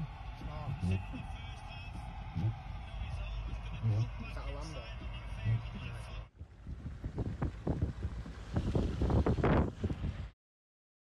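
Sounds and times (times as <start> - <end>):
low steady rumble: 0.0 - 10.3
wind buffeting microphone: 6.4 - 10.4.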